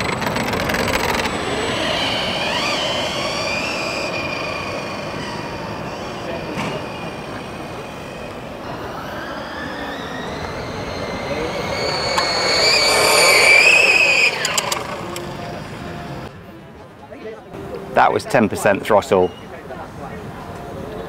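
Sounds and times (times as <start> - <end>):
electric motor whine: 0.0 - 16.3.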